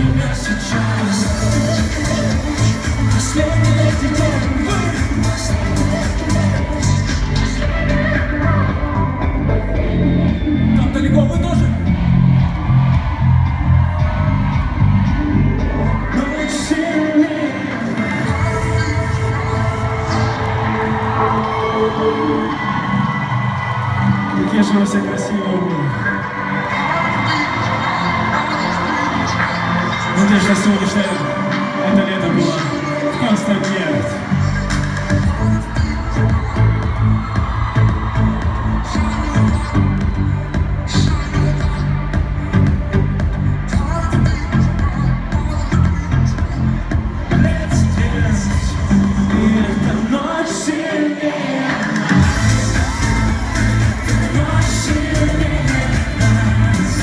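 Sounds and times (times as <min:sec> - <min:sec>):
crowd noise: 0:00.0 - 0:57.0
live pop music with singing: 0:00.0 - 0:57.0.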